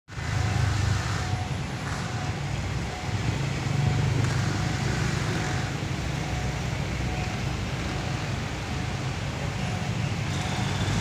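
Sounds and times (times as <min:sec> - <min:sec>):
diesel engine droning: 0:00.1 - 0:11.0.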